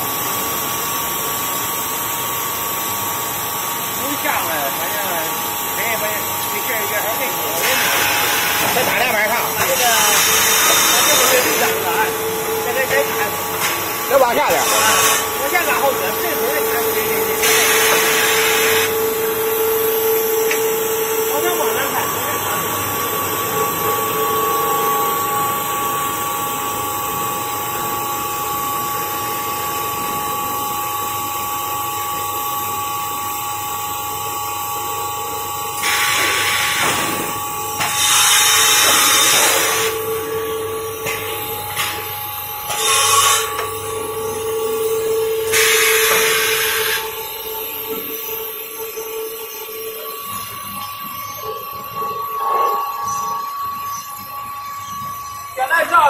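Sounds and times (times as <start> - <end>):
machine humming with held tones: 0.0 - 56.0
loud bursts of hissing air: 7.4 - 8.9, 9.7 - 12.2, 13.1 - 15.8, 17.4 - 19.0, 35.8 - 40.0, 42.7 - 43.5, 45.5 - 47.2.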